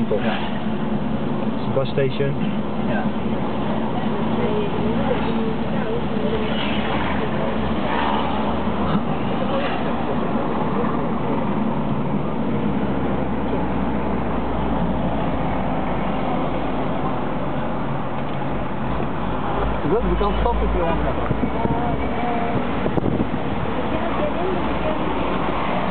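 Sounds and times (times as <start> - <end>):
car engine and road noise: 0.0 - 25.9
city traffic: 0.0 - 25.9.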